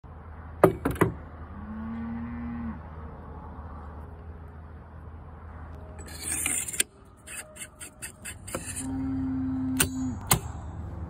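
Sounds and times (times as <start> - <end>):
cow mooing: 1.5 - 2.9, 8.8 - 10.2.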